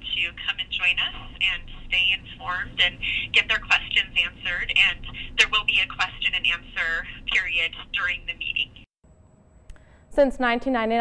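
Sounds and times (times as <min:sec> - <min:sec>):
woman speaking over telephone: 0:00.0 - 0:08.9.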